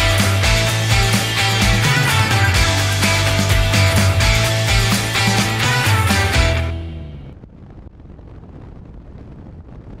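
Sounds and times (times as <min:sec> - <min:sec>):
wind rumble on microphone: 0:07.1 - 0:10.0.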